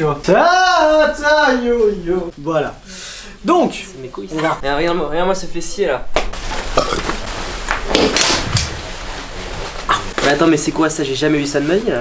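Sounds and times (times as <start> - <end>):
fabric rustling: 6.3 - 12.0.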